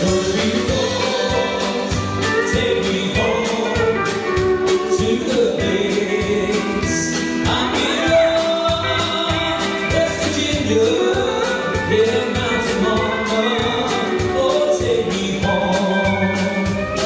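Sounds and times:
keyboards: 0.0s - 17.0s
live band music: 0.0s - 17.0s
person singing: 0.0s - 17.0s
steady drum beat: 0.0s - 17.0s.

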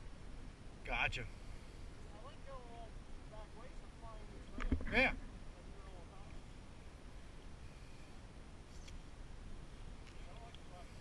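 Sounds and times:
low steady rumble: 0.0s - 11.0s
light clicks: 10.0s - 10.7s.

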